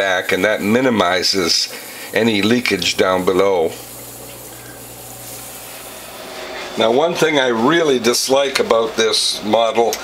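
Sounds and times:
even hiss: 0:00.0 - 0:10.0.

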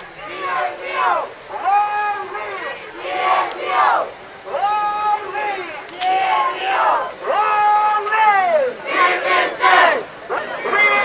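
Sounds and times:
crowd shouting slogans: 0:00.0 - 0:11.0.

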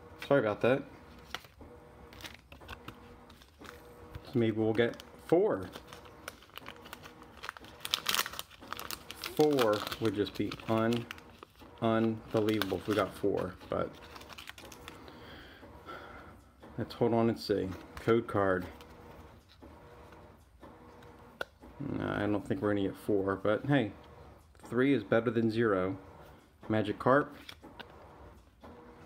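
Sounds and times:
trading cards rustling: 0:00.2 - 0:15.4, 0:17.5 - 0:20.3
foil wrapper crinkling: 0:01.2 - 0:15.2
wrapper being torn open: 0:04.8 - 0:15.0.

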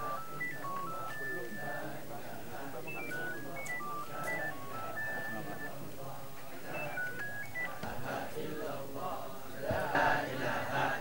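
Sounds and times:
phone ringtone beeping melody: 0:00.0 - 0:05.9, 0:06.7 - 0:07.9
crowd murmuring: 0:00.0 - 0:11.0.

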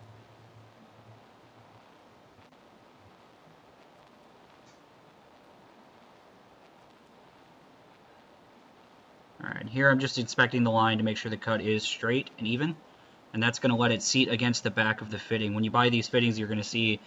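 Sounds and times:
low hum: 0:00.0 - 0:17.0
very faint clicks: 0:04.5 - 0:04.9.

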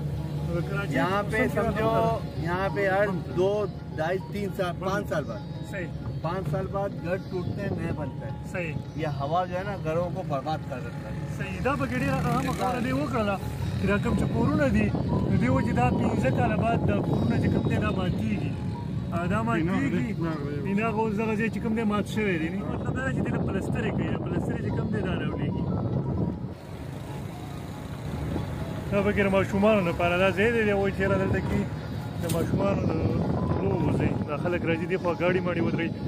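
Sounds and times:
low rumble of traffic: 0:00.0 - 0:36.0
road noise: 0:00.0 - 0:36.0
car engine rumble: 0:25.5 - 0:34.2
man talking: 0:28.9 - 0:36.0.

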